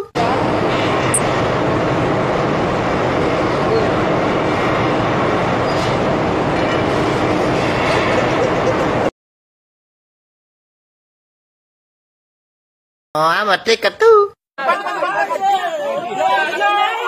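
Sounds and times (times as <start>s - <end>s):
factory machinery running: 0.2s - 9.1s.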